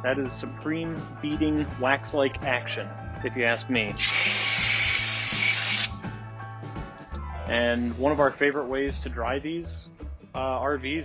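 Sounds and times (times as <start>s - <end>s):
background music: 0.0s - 11.0s
hose water spray hissing: 4.0s - 6.0s.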